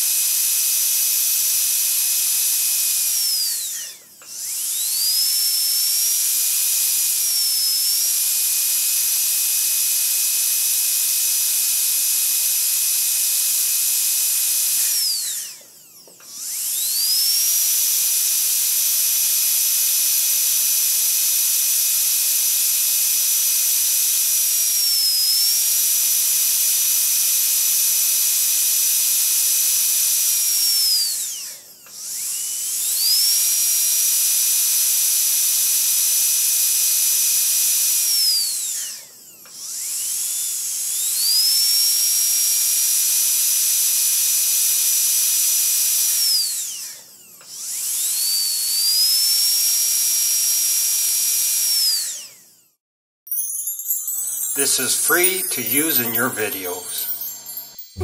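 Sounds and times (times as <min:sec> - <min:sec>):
dentist's high-speed drill whining: 0:00.0 - 0:52.8, 0:53.4 - 0:58.0.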